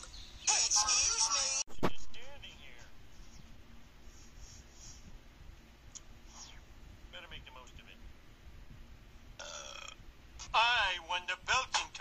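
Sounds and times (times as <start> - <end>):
cartoon burp: 9.4 - 10.0.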